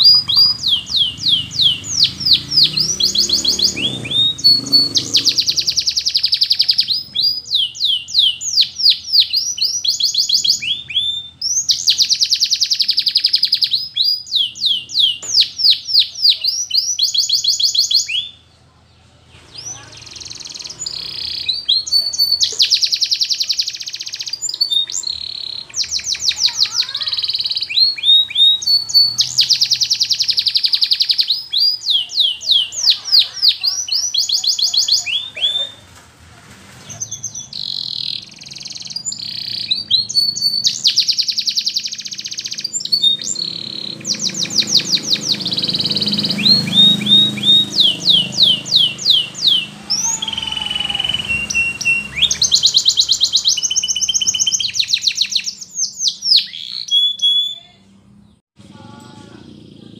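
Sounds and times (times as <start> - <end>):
canary singing: 0.0 - 36.0, 36.7 - 59.9.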